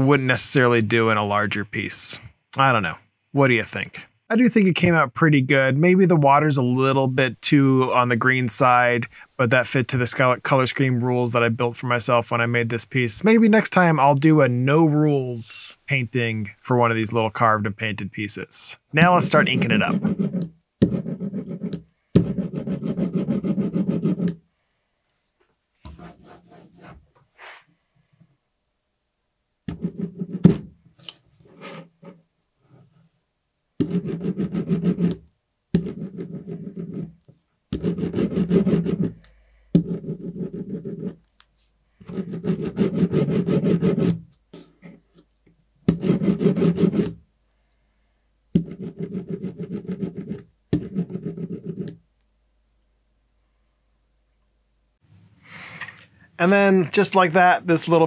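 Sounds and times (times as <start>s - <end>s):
brayer rolling ink: 19.1s - 24.4s.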